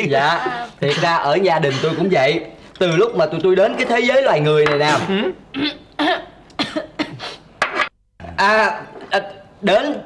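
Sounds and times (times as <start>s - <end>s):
person coughing: 5.0s - 7.4s.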